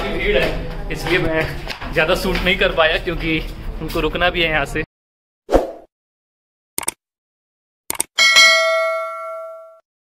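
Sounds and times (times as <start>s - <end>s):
notification bell ding: 8.2s - 9.8s.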